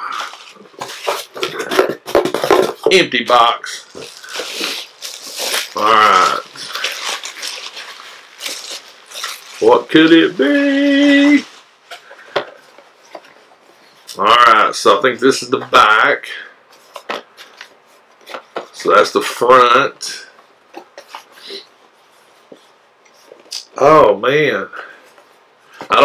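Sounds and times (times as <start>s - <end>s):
bubble wrap and cardboard rustling: 0.0s - 24.0s.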